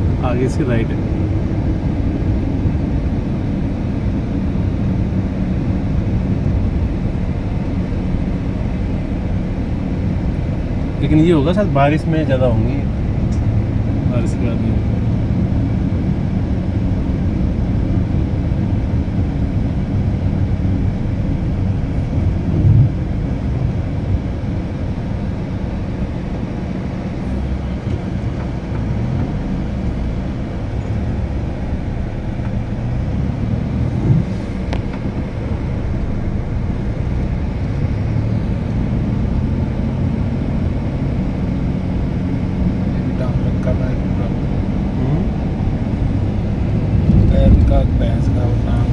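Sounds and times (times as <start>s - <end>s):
car engine and road noise: 0.0s - 48.9s.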